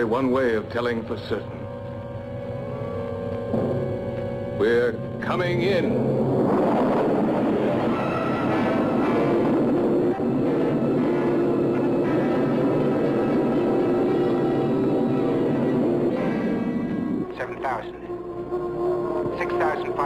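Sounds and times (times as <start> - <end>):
droning film score: 0.0 - 20.0.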